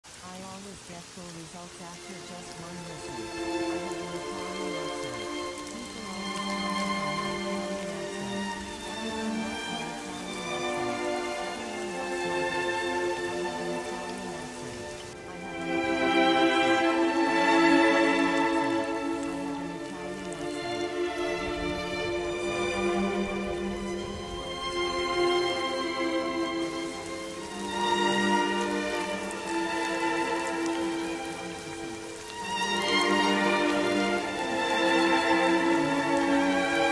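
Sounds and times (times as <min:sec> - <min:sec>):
steady rain: 0:00.0 - 0:36.9
soft music with slow melody: 0:00.1 - 0:36.9.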